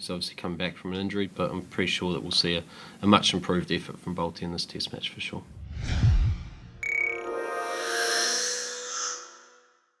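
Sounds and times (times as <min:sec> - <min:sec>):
bright chime with held chord: 0:06.8 - 0:08.9.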